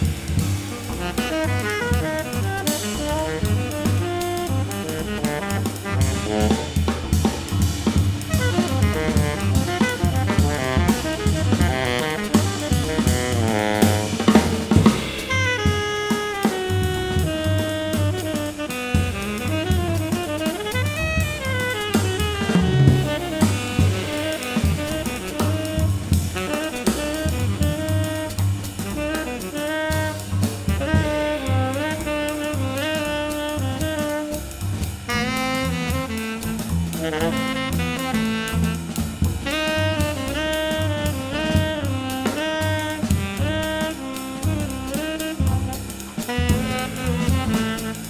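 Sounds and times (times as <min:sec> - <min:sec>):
drum kit with cymbals: 0:00.0 - 0:48.0
tenor saxophone: 0:00.0 - 0:48.0
upright bass: 0:00.0 - 0:48.0.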